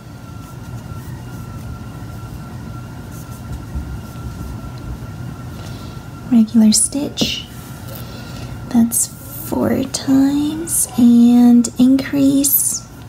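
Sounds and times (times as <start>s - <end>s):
low background hum: 0.0s - 13.0s.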